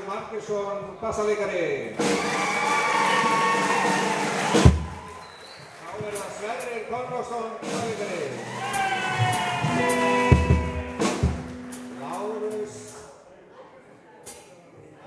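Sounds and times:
drum and cymbal hits: 0:02.0 - 0:05.1, 0:07.6 - 0:13.1
man's voice over loudspeakers: 0:05.9 - 0:08.4, 0:12.0 - 0:13.2.

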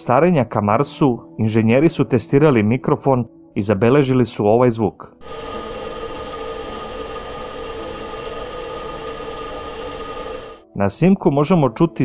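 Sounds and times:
heat pump humming: 0:05.2 - 0:10.6.

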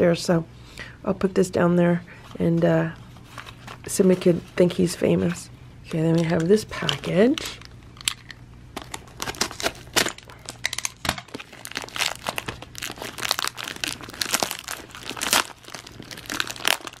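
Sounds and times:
plastic mailer tearing and crinkling: 0:08.8 - 0:17.0.

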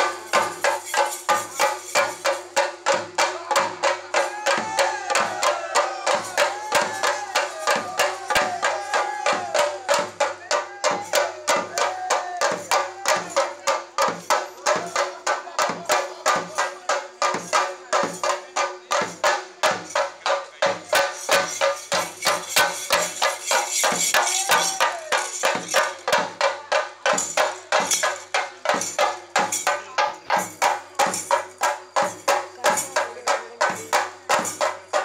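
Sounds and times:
cymbals: 0:00.0 - 0:35.0
drums beating fast: 0:00.0 - 0:35.0.

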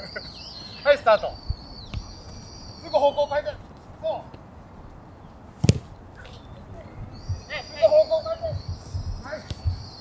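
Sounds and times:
soccer ball kick thud: 0:05.6 - 0:06.0.

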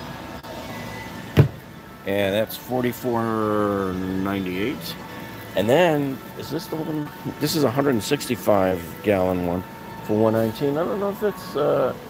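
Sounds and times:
large store background noise: 0:00.0 - 0:12.0
plastic lid shutting with a knock: 0:01.4 - 0:01.6.

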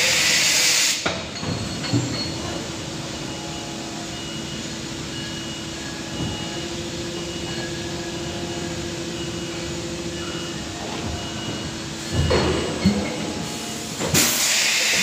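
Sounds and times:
machine hum: 0:02.6 - 0:14.2.

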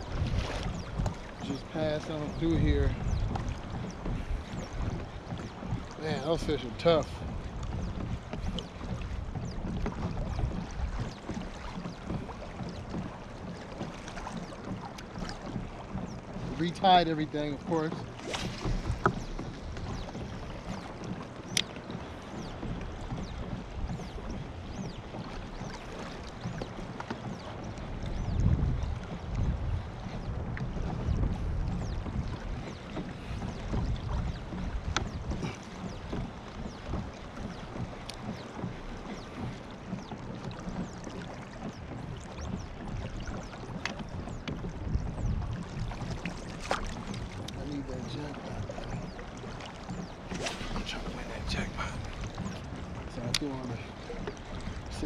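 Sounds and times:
wind gusting on microphone: 0:00.0 - 0:13.2, 0:15.0 - 0:39.6, 0:41.7 - 0:55.0
water lapping around kayak: 0:00.0 - 0:55.0
light clicks: 0:21.5 - 0:21.8, 0:53.2 - 0:53.5.

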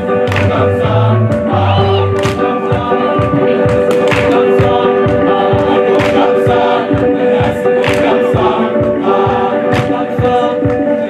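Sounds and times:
choir singing in harmony: 0:00.0 - 0:11.0
steady low beat: 0:00.0 - 0:11.0.

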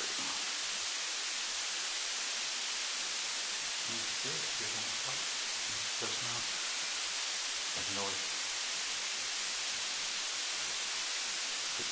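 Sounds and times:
steady hiss: 0:00.0 - 0:11.9.

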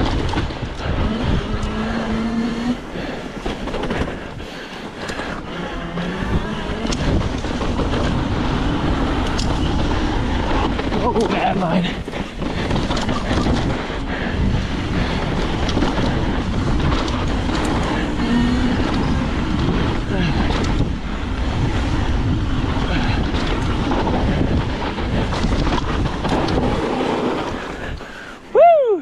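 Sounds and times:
bike rattling clicks and knocks: 0:00.0 - 0:28.4
bike tyres rolling over rocky dirt: 0:00.0 - 0:28.7
wind rushing over microphone: 0:00.0 - 0:29.0.

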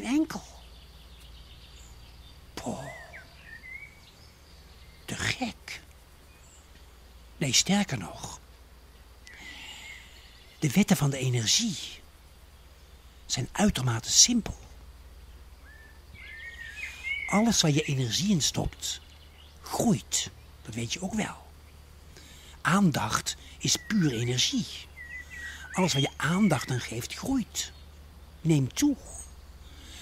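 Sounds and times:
faint bird chirps: 0:00.0 - 0:30.0
low steady hum: 0:00.0 - 0:30.0.

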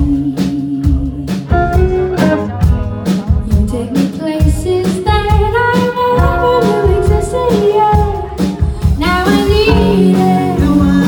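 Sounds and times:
woman singing: 0:00.0 - 0:01.9, 0:03.1 - 0:11.0
electric guitar: 0:00.0 - 0:11.0
steady beat: 0:01.0 - 0:11.0.

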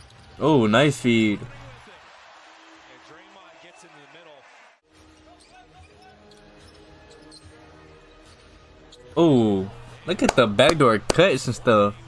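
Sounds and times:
arena crowd noise: 0:00.0 - 0:08.2, 0:09.3 - 0:12.0
commentator speaking: 0:00.4 - 0:01.9, 0:09.2 - 0:12.0.

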